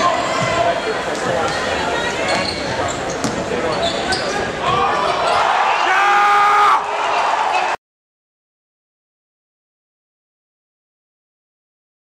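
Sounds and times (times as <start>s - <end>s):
crowd noise: 0.0s - 7.8s.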